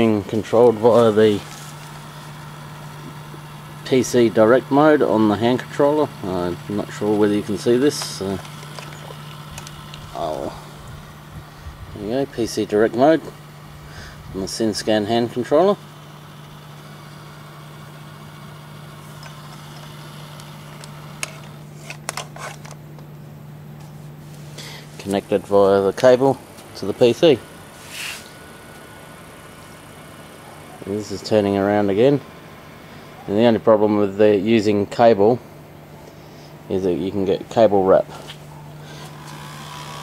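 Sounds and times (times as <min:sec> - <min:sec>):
motor humming: 0:00.0 - 0:40.0.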